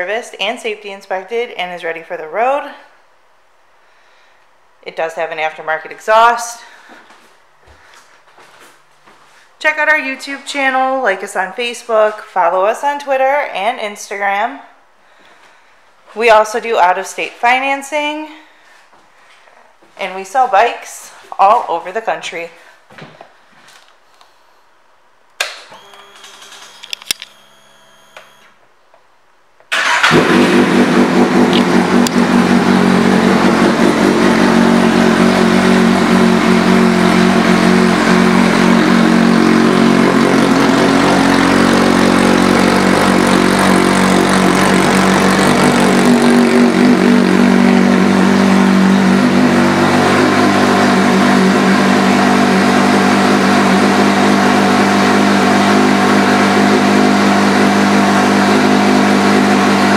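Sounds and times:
motorcycle engine starting and idling: 25.6 - 27.0, 29.7 - 59.9.

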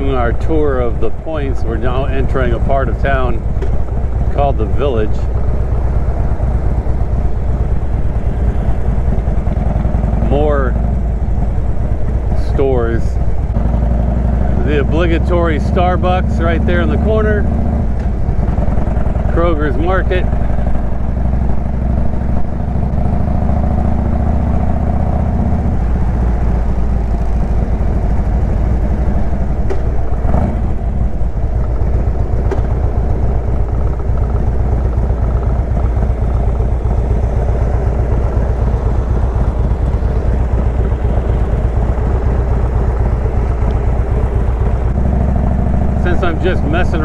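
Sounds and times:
motorcycle engine running: 0.0 - 47.0.

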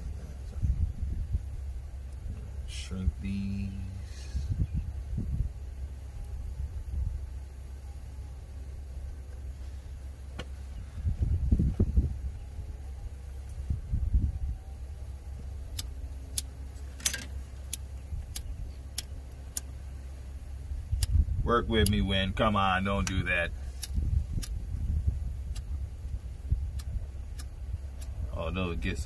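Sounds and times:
low rumble: 0.0 - 29.0.

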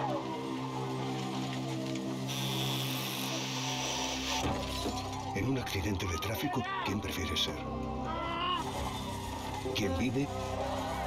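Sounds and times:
low music drone: 0.0 - 6.2, 6.9 - 11.0.

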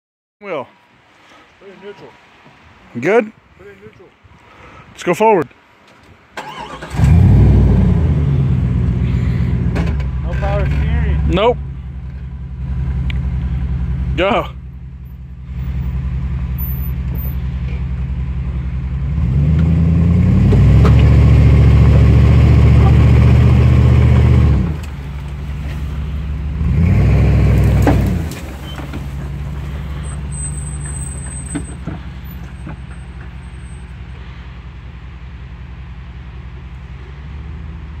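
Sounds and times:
car engine revving under load: 6.4 - 34.8.

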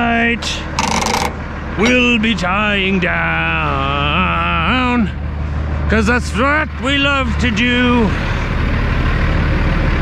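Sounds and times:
truck diesel engine rumbling: 0.0 - 10.0.

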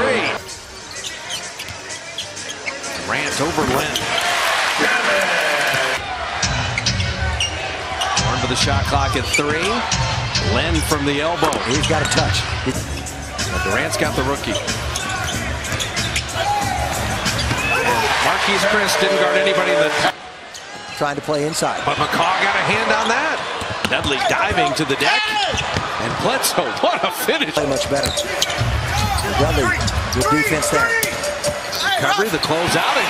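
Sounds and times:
crowd noise: 0.0 - 33.0
shoe squeaks: 0.4 - 4.4, 14.4 - 18.1, 27.6 - 32.6
crowd murmur: 12.5 - 18.4
arena music: 12.5 - 20.1, 27.5 - 33.0.

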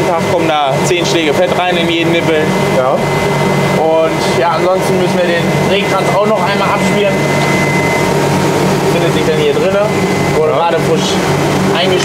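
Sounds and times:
high constant whine: 0.0 - 12.0
machinery droning: 0.0 - 12.0.

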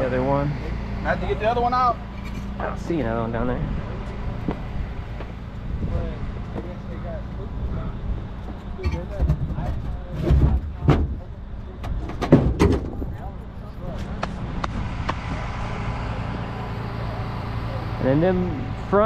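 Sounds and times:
truck engine idling: 0.0 - 19.0.

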